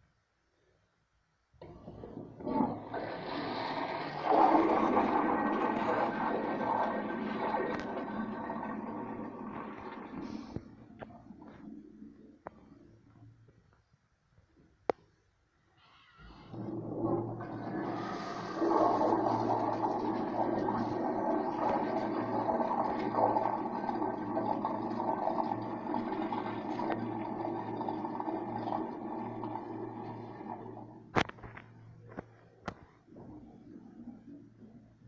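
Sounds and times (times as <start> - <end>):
urinal flushing water rushing: 1.6 - 12.4, 16.4 - 31.3.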